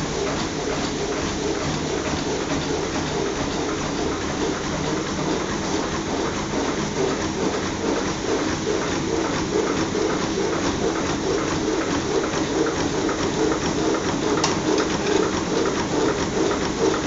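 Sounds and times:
bag making machine clattering: 0:00.0 - 0:17.0.

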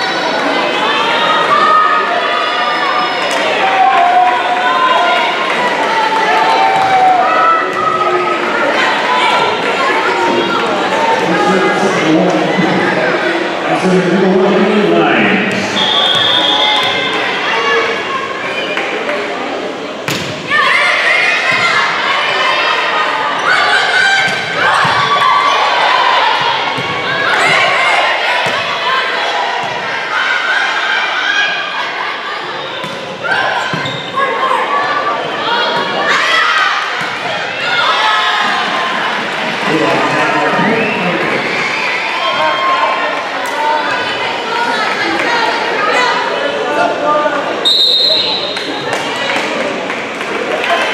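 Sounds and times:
spectators cheering: 0:00.0 - 0:19.3, 0:20.5 - 0:46.3
players shouting: 0:00.0 - 0:19.4, 0:20.3 - 0:50.9.

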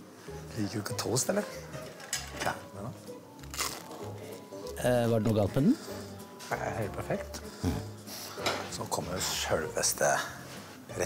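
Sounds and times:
background music: 0:00.0 - 0:11.0
crunch of biting a toasted sandwich: 0:03.4 - 0:04.2.

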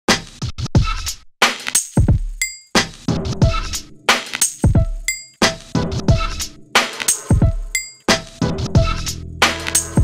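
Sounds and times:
electronic beat with deep bass: 0:02.0 - 0:10.0
bright bell-like clink: 0:05.1 - 0:05.4, 0:07.8 - 0:08.1.

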